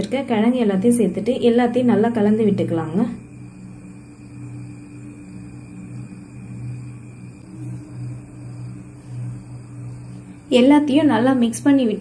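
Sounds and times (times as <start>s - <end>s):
induction cooktop humming: 0.0s - 12.0s.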